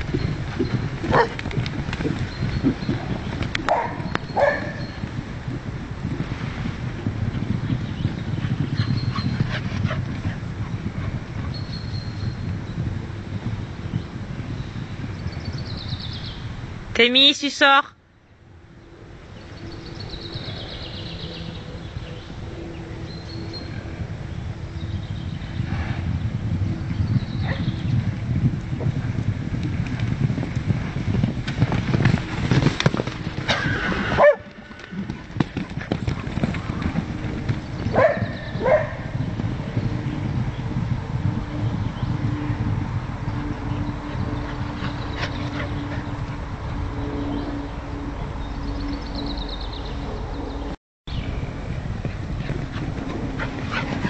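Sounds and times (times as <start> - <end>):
horse hoofbeats on sand: 0.0 - 16.3, 24.9 - 47.6, 51.2 - 54.0.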